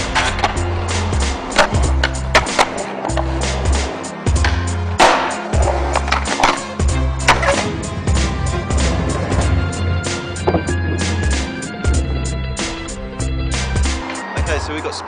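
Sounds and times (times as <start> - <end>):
skateboard wheels rolling on concrete: 0.0 - 15.0
skateboard clacks: 1.2 - 8.2, 10.2 - 11.5
music with pulsing bass: 6.8 - 14.0.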